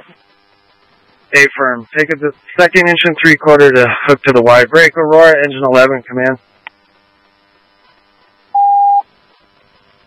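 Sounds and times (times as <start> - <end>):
faint hiss: 0.0 - 10.0
electronic beep tone: 8.6 - 9.0.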